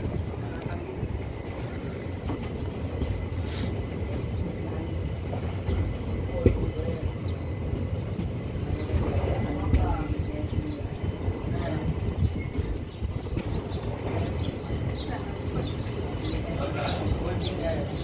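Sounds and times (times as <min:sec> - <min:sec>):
train wheels rumbling on track: 0:00.0 - 0:18.0.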